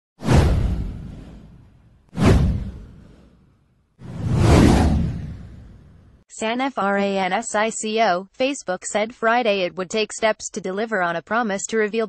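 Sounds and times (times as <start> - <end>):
whoosh sound effects: 0.2 - 3.4, 4.0 - 6.2.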